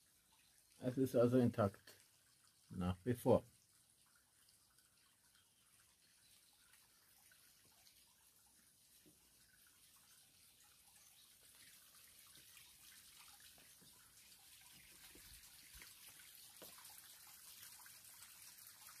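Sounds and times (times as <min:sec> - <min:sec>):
faint water drips: 0:00.0 - 0:19.0
water trickling through tunnel: 0:00.0 - 0:19.0.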